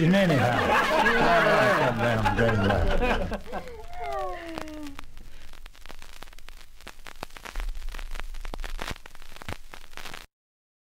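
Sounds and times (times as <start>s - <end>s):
vinyl record crackle and clicks: 0.0s - 10.3s
low rumble: 7.6s - 9.2s.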